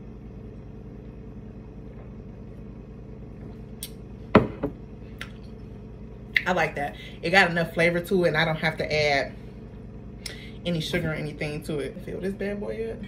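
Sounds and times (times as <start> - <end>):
low room hum: 0.0 - 13.0
cup set down on counter: 4.3 - 4.8.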